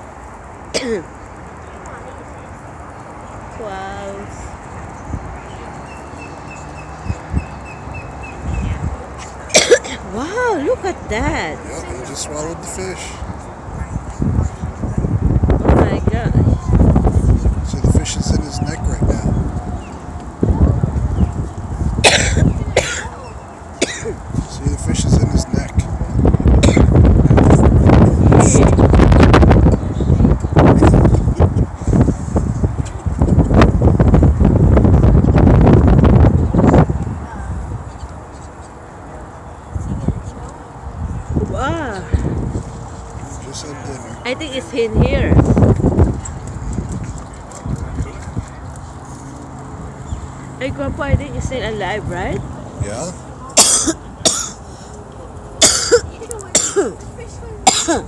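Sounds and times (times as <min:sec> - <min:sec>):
woman coughing: 0:00.7 - 0:01.1, 0:09.5 - 0:10.1, 0:22.0 - 0:23.2, 0:23.8 - 0:24.2, 0:26.6 - 0:26.9, 0:53.6 - 0:54.6, 0:55.6 - 0:57.0, 0:57.6 - 0:58.0
wind buffeting microphone: 0:02.8 - 0:53.2.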